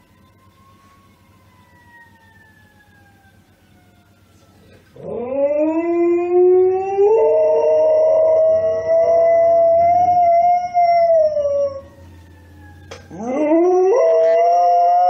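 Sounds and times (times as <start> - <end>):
dog howling: 13.1 - 15.0.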